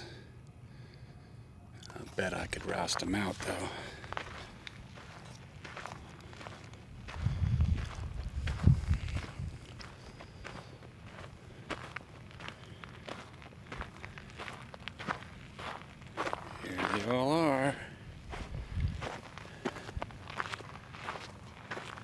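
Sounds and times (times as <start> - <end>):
footsteps crunching on gravel: 1.9 - 22.0.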